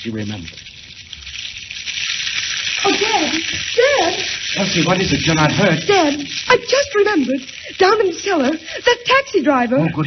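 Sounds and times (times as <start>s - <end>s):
fire crackling: 0.0s - 9.8s
woman crying out: 2.8s - 4.3s.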